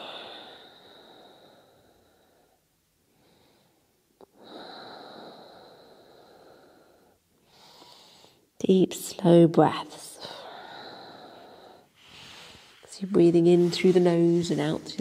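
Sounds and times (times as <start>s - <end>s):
deep breaths through nose: 0.0s - 8.5s, 10.4s - 12.9s.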